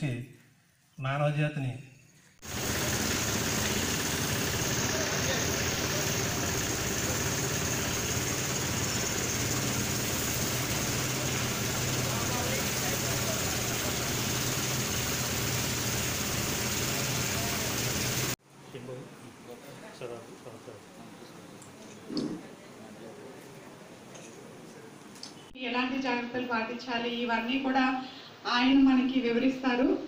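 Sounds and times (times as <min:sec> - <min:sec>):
low mechanical hum: 0:02.4 - 0:25.6.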